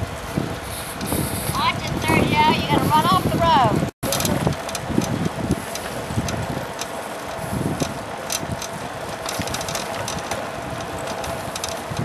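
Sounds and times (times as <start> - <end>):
road and wind noise: 0.0 - 12.0
wind buffeting microphone: 0.0 - 12.0.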